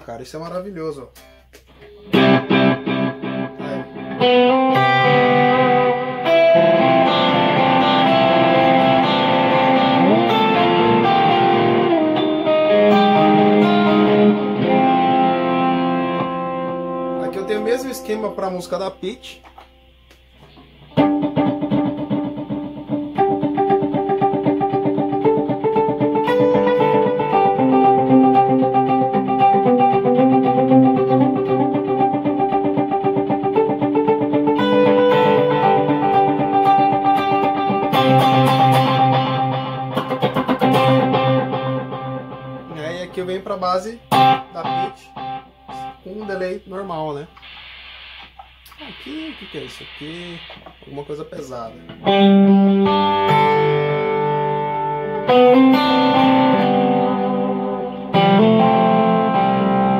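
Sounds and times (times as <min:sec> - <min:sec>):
electric guitar with delay and reverb: 0:01.2 - 0:47.4, 0:50.0 - 0:59.9.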